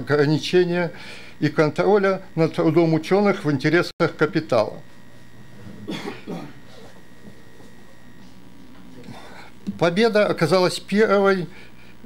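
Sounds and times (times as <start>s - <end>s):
room hum: 0.0s - 12.0s
person coughing: 5.6s - 7.0s.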